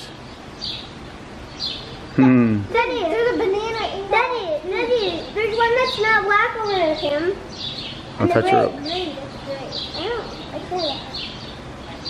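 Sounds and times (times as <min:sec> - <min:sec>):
small bird chirping: 0:00.0 - 0:02.6, 0:05.0 - 0:12.0
outdoor background noise: 0:00.0 - 0:12.0.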